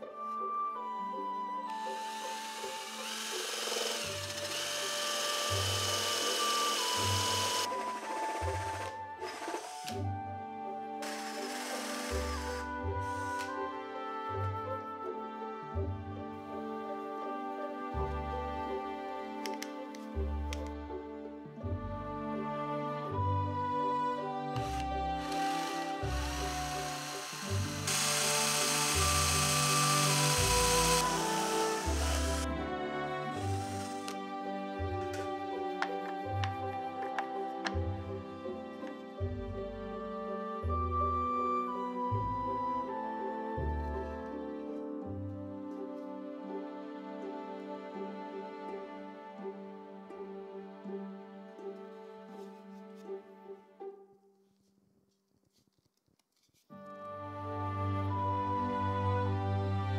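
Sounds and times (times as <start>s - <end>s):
background music: 0.0s - 54.4s, 56.7s - 59.9s
drill boring into wood: 1.7s - 10.1s, 11.0s - 13.6s, 24.6s - 32.5s, 33.3s - 34.2s.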